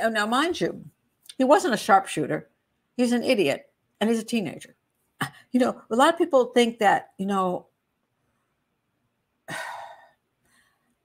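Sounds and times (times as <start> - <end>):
woman sighing: 9.5 - 10.2.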